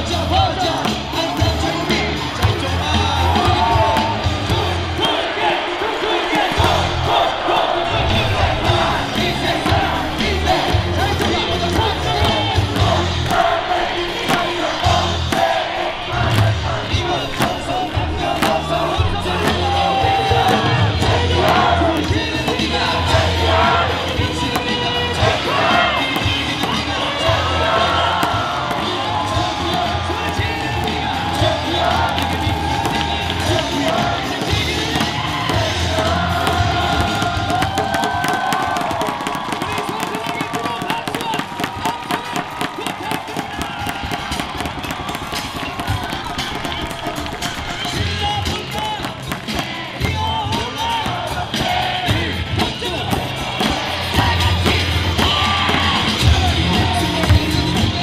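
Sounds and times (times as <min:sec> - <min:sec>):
cheer music over loudspeakers: 0:00.0 - 0:58.0
crowd cheering: 0:00.0 - 0:58.0
crowd singing and chanting: 0:00.0 - 0:58.0
rhythmic clapping: 0:00.0 - 0:58.0.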